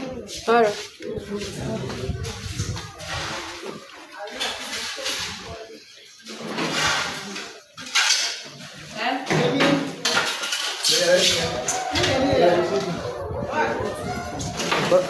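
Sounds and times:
indistinct voices: 0:00.0 - 0:08.0, 0:10.8 - 0:15.0.

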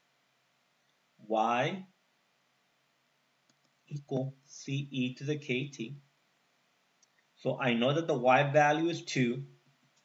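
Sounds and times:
man's voice: 0:01.2 - 0:01.9, 0:03.9 - 0:06.0, 0:07.4 - 0:09.5.

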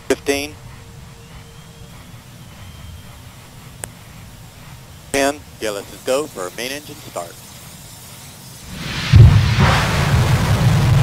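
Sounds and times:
low rush and rumble: 0:00.0 - 0:11.0
steady hum: 0:00.0 - 0:11.0
faint high whistle: 0:00.7 - 0:04.0.

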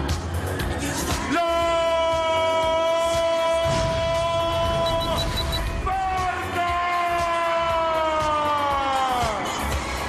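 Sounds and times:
siren-like held tone: 0:04.8 - 0:05.7.

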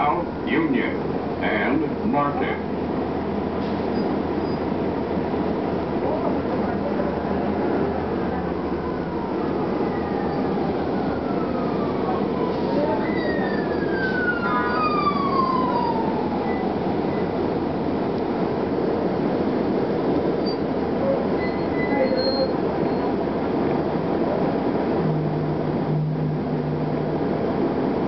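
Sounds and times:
bus engine rumble: 0:00.0 - 0:28.0
drivetrain whine falling in pitch: 0:24.9 - 0:27.8.

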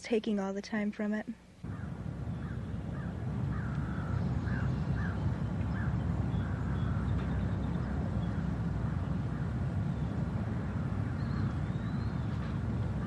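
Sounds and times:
steady low rumble: 0:01.6 - 0:13.0.

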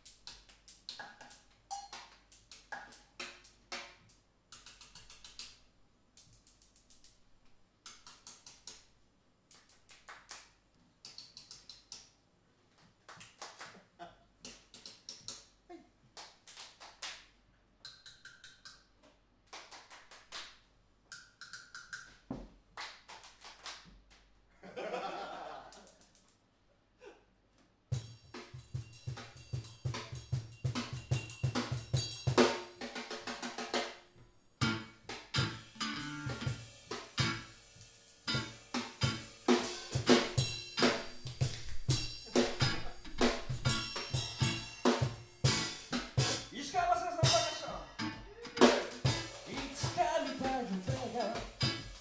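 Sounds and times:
hand claps: 0:00.0 - 0:05.6, 0:09.5 - 0:12.1, 0:12.7 - 0:13.8, 0:14.4 - 0:15.6, 0:16.2 - 0:18.8, 0:19.5 - 0:22.0, 0:22.8 - 0:24.3, 0:35.1 - 0:35.4, 0:40.1 - 0:44.6, 0:48.6 - 0:52.0
sharp taps on small percussion: 0:00.0 - 0:05.6, 0:11.0 - 0:12.2
people laughing: 0:24.6 - 0:26.0, 0:42.3 - 0:43.3.

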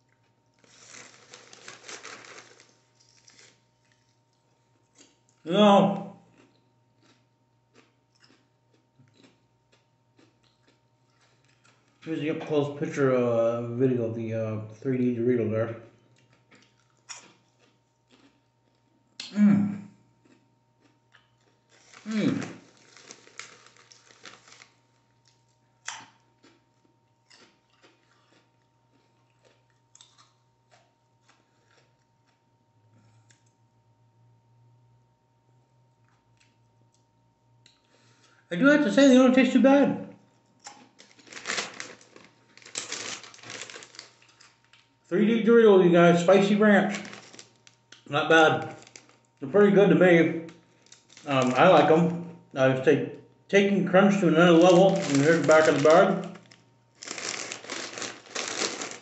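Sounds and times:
person chewing crunchy chips: 0:00.0 - 0:05.6, 0:06.3 - 0:12.1, 0:16.1 - 0:19.3, 0:20.2 - 0:33.5, 0:40.6 - 0:45.0, 0:46.3 - 0:49.4, 0:50.4 - 0:52.1, 0:54.3 - 0:59.0.

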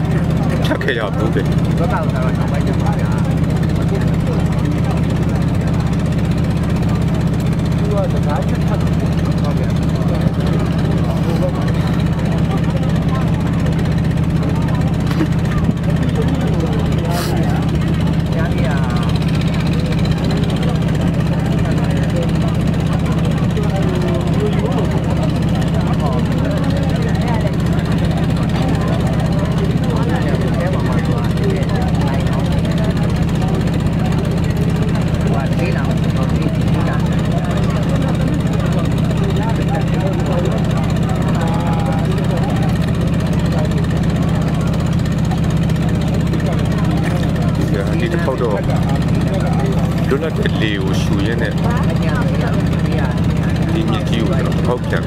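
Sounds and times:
motor engine droning: 0:00.0 - 0:55.0
man talking: 0:00.4 - 0:05.8, 0:17.0 - 0:17.7, 0:47.2 - 0:51.7, 0:53.6 - 0:55.0.

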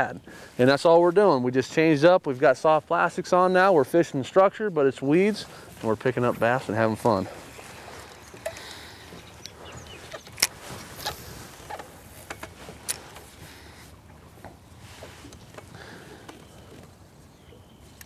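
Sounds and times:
outdoor background hiss: 0:00.0 - 0:18.0.

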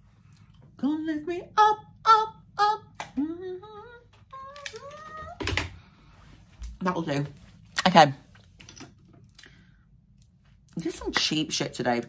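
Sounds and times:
person humming: 0:00.8 - 0:05.5.

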